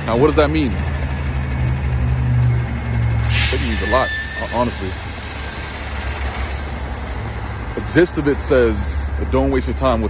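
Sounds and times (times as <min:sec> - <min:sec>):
low rumble of street noise: 0:00.0 - 0:10.0.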